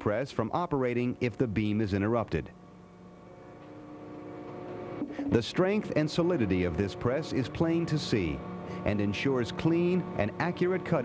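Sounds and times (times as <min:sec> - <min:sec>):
hydraulic press humming: 0:02.7 - 0:11.0.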